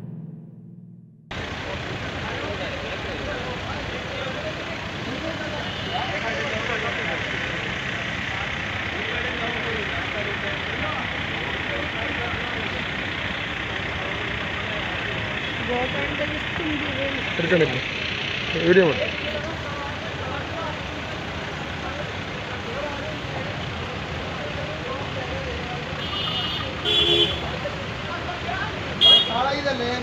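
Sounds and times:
people's voices: 1.3 - 30.0
vehicle engines idling: 1.3 - 30.0.

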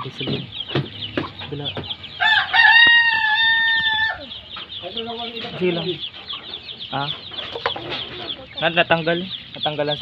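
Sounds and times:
young chickens clucking and peeping: 0.0 - 10.0.

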